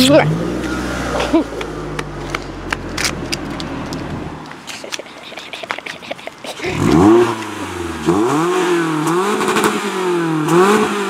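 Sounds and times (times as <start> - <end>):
low engine hum: 0.0 - 4.7, 6.0 - 10.6
car engine revving hard: 6.6 - 11.0.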